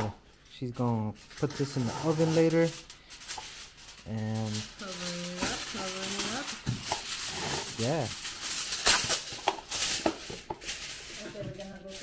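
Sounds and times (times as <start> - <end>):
seasoning flakes rattling: 0.8 - 12.0.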